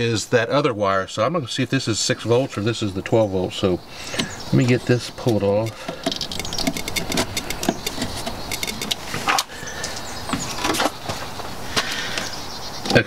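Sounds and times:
plastic connector clicks and rattles: 5.2s - 9.0s.

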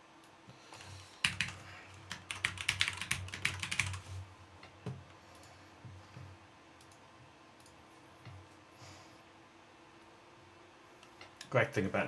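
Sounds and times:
typing on a computer keyboard: 1.2s - 4.0s.

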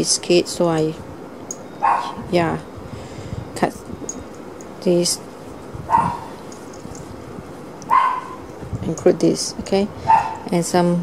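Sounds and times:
dog barking: 1.8s - 2.2s, 5.9s - 6.3s, 7.9s - 8.4s, 10.1s - 10.5s.

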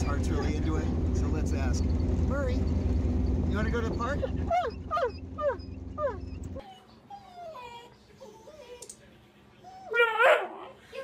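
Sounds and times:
dog whimpering: 0.0s - 0.8s, 4.0s - 9.0s, 9.6s - 11.0s
dog whining: 0.0s - 0.8s, 4.0s - 9.0s, 9.6s - 11.0s
car driving rumble: 0.0s - 6.6s.

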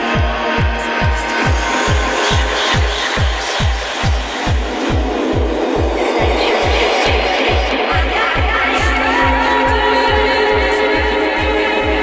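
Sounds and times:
trance music: 0.0s - 12.0s.

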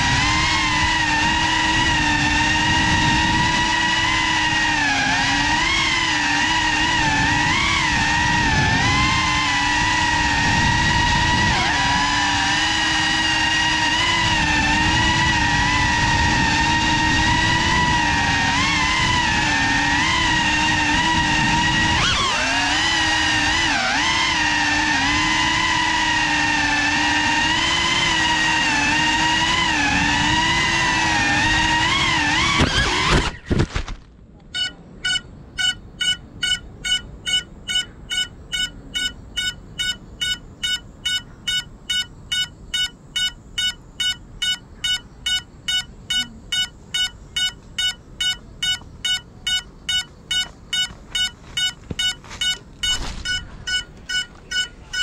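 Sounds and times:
drone motors whining: 0.0s - 33.6s, 34.5s - 55.0s
drone crashing into bamboo: 32.5s - 34.2s, 52.8s - 53.7s
steady electronic beeps: 34.6s - 55.0s.

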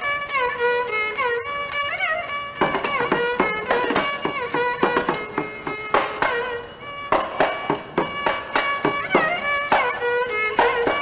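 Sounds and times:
violin gliding notes: 0.0s - 11.0s
hand drum strokes: 1.7s - 11.0s.

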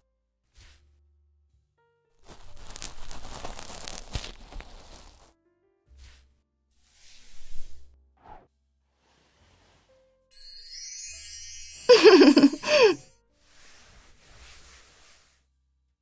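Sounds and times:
cotton swab rubbing inside ear: 2.2s - 5.3s.

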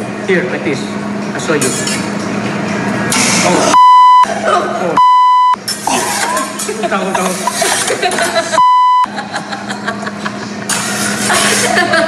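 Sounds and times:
censor bleep: 3.8s - 4.3s, 5.0s - 5.6s, 8.6s - 9.1s.

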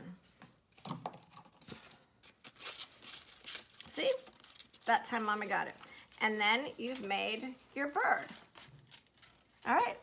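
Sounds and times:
paper rustling and scraping: 1.5s - 9.7s.

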